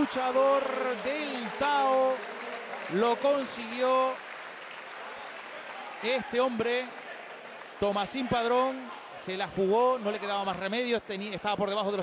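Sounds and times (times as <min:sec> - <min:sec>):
spectators clapping: 0:00.0 - 0:12.0.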